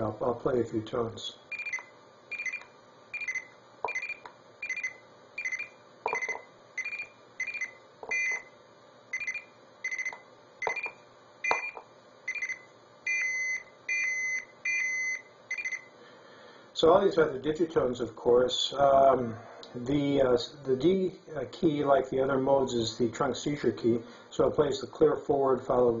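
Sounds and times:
telephone signalling beeps: 1.5 - 8.5, 9.1 - 15.9.

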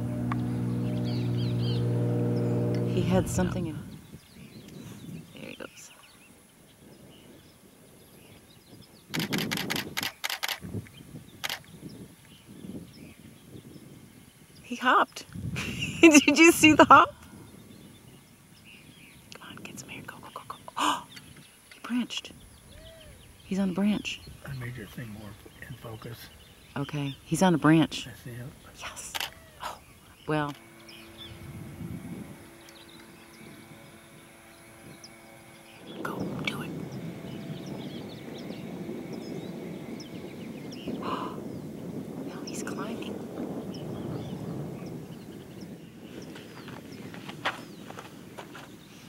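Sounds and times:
low rushing noise: 0.0 - 4.0, 30.5 - 45.1
steady low hum: 0.0 - 5.8, 15.5 - 49.0
low outdoor rumble: 0.0 - 5.9, 22.2 - 49.0
bird chirps: 0.0 - 6.3, 29.8 - 43.0.

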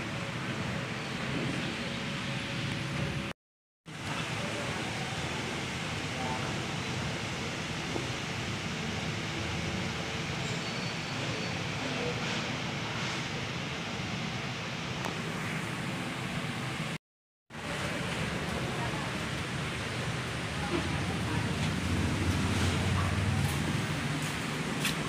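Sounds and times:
crowd chatter: 17.6 - 25.0.

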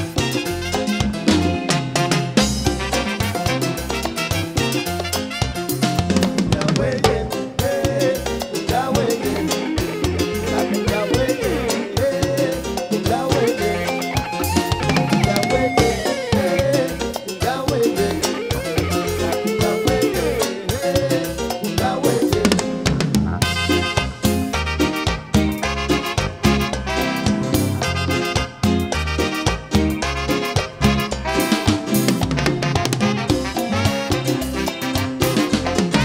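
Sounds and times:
live band playing dance music: 0.0 - 36.0.

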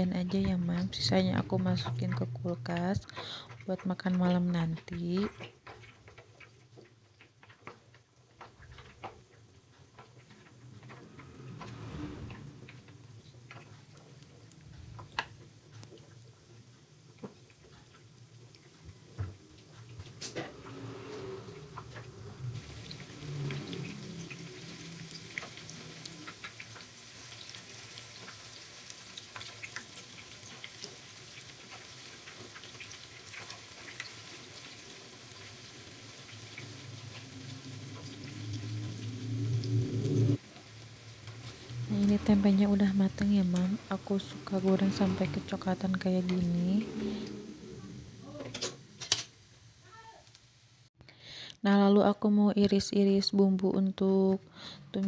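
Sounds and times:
oil crackling and popping: 0.0 - 44.6, 47.9 - 50.6
food sizzling in hot oil: 11.9 - 51.0.

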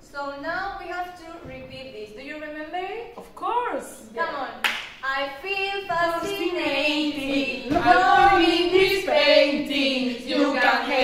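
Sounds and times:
sharp handclaps: 4.6 - 5.0.

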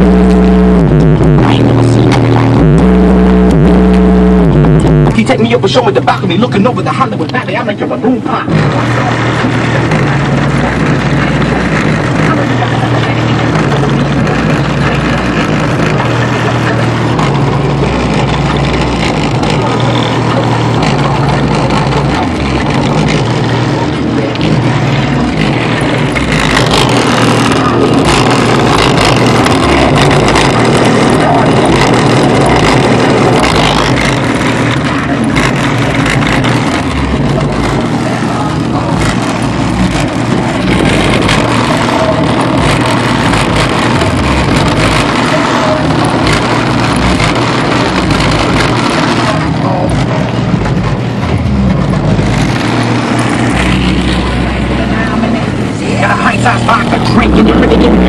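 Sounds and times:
rap music with heavy bass: 0.0 - 58.0.

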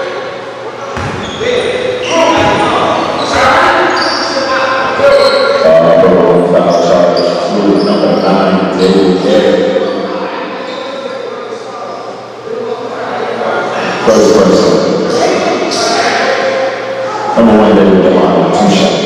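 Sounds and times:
sneakers squeaking: 0.0 - 5.8, 6.6 - 12.2
ball bouncing on wooden court: 1.0 - 1.4, 2.2 - 3.4.

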